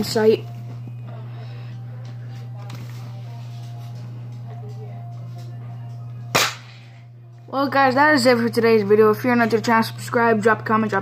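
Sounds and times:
steady low hum: 0:00.0 - 0:11.0
toy dart blaster firing: 0:06.3 - 0:06.8.

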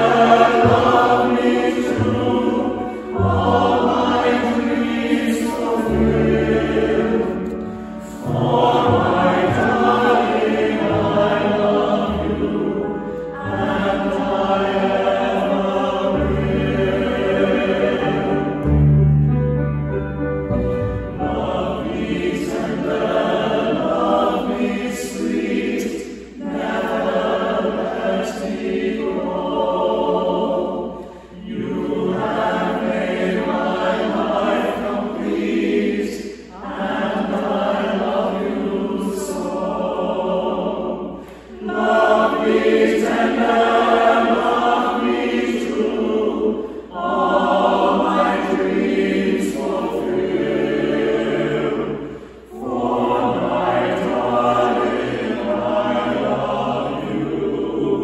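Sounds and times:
mixed choir singing: 0:00.0 - 0:19.6, 0:20.4 - 0:58.0.

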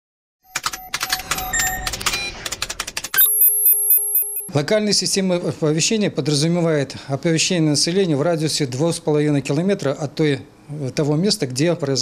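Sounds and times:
sharp clicks and glitchy tones: 0:00.4 - 0:04.5
pulsing high electronic beeping: 0:00.5 - 0:02.4, 0:03.1 - 0:04.5.

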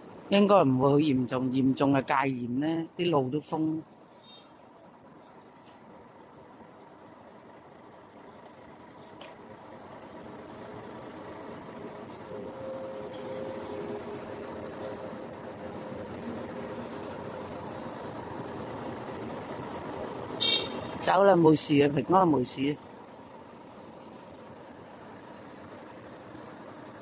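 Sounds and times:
street traffic: 0:00.0 - 0:27.0.

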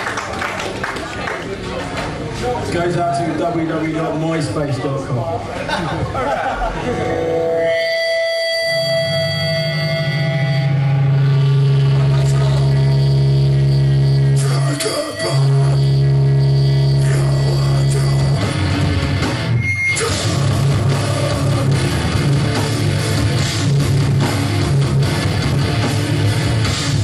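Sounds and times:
punk band playing live: 0:06.6 - 0:27.0.

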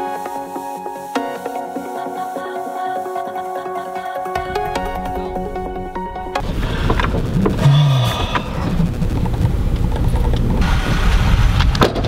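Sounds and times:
electronic music: 0:00.0 - 0:11.4
car road and wind noise: 0:06.4 - 0:12.0.

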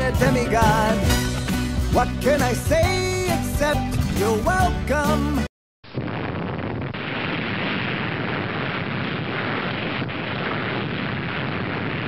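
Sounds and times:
explosion rushing rumble: 0:06.0 - 0:12.0.

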